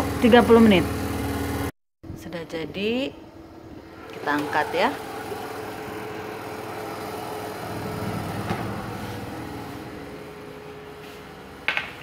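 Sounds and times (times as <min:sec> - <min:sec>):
electric oven humming: 0:00.0 - 0:12.0.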